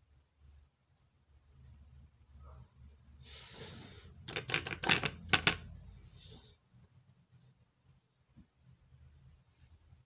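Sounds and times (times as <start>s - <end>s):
clicks of small hard objects: 4.3s - 5.6s.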